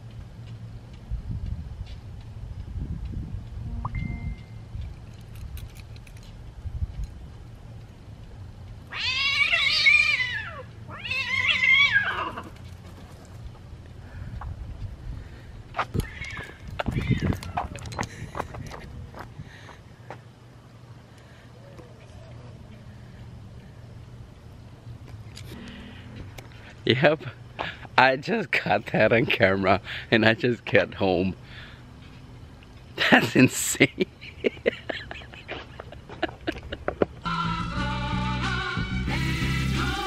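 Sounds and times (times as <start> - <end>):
cats yowling: 8.9 - 12.5.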